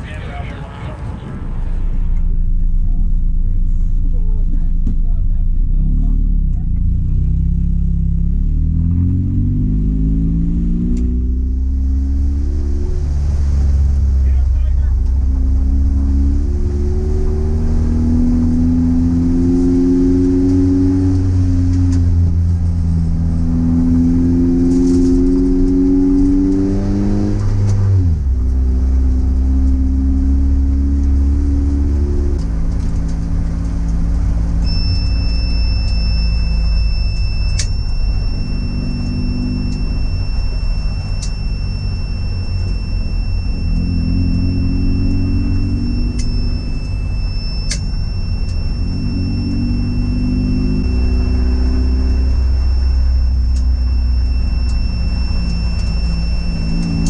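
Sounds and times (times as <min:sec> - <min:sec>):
high-pitched whine: 0:00.0 - 0:57.0
race car engine revving: 0:00.0 - 0:57.0.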